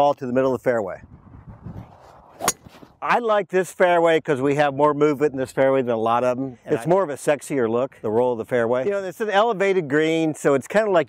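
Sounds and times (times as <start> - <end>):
faint outdoor background noise: 0.0 - 11.0
golf club striking ball: 2.4 - 2.9.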